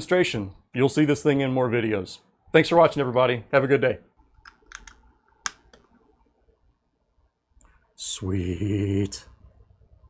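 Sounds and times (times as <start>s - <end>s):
cable plugging in: 4.4s - 5.9s.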